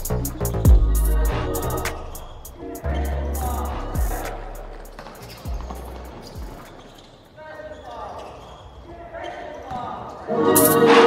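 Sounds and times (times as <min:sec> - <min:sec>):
basketball bouncing on court: 0:03.4 - 0:07.2.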